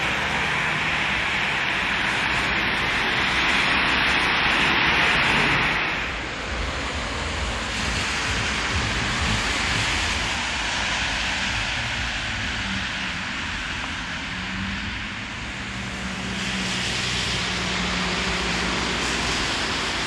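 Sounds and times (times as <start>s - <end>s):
tyre hiss of passing cars: 0.0s - 20.0s.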